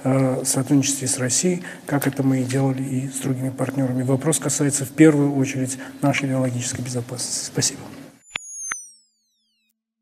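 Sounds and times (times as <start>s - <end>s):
short electronic clicks: 8.2s - 9.7s
high tone falling in pitch: 8.2s - 9.8s.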